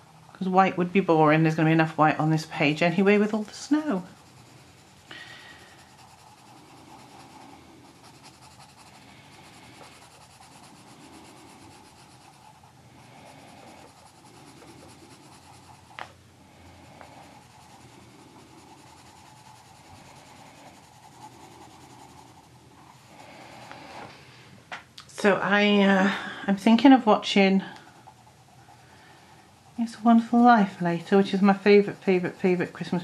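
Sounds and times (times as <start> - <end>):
pencil scratching on paper: 0.0 - 16.0, 17.0 - 24.0, 27.4 - 28.9, 29.5 - 33.0.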